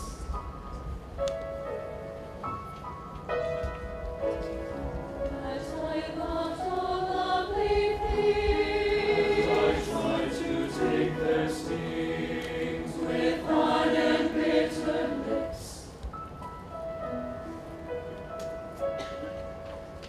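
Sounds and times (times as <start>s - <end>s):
choir singing in harmony: 5.2s - 16.0s.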